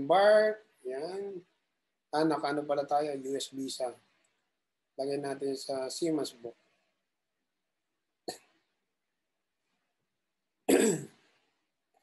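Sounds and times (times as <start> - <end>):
man coughing: 10.7 - 11.1
faint throat sound: 10.7 - 11.2.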